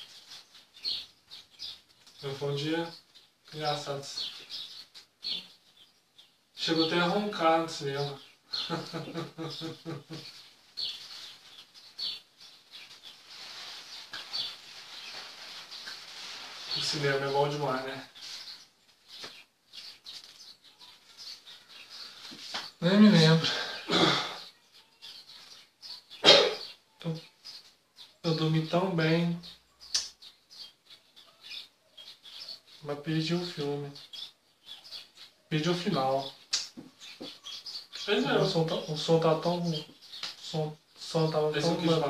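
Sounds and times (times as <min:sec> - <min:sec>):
bird chirping: 0:00.0 - 0:42.0
steady background hiss: 0:02.0 - 0:05.8, 0:06.5 - 0:20.4, 0:21.9 - 0:24.4, 0:35.5 - 0:37.0, 0:38.0 - 0:42.0.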